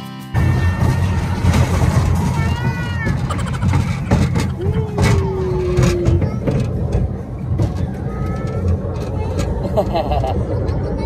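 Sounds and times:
wind buffeting microphone: 0:00.8 - 0:11.0.

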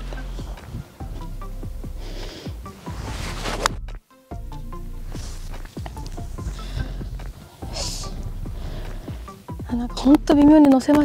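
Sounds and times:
wind rumbling on microphone: 0:00.0 - 0:02.0
hiss of wind gust: 0:01.9 - 0:03.8, 0:05.0 - 0:09.6.

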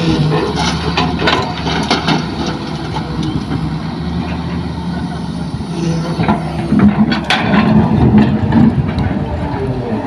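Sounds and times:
excavator diesel engine: 0:00.0 - 0:10.0.

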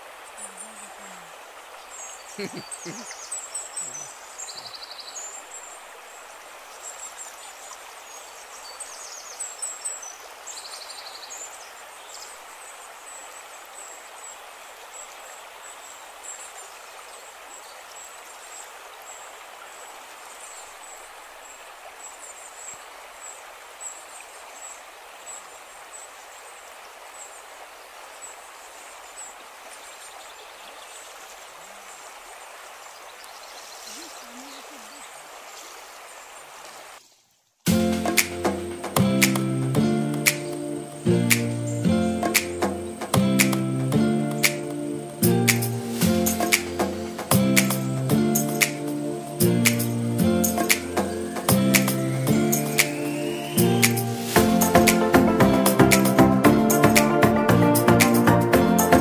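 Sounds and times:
stream running over rocks: 0:00.0 - 0:59.0.

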